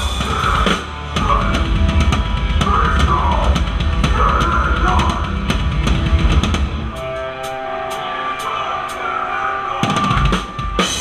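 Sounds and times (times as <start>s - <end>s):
drums and cymbals: 0.0s - 11.0s
heavy rock band playing: 0.0s - 11.0s.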